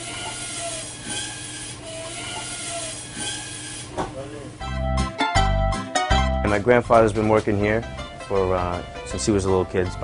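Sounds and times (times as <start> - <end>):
meat saw grinding: 0.0 - 4.0.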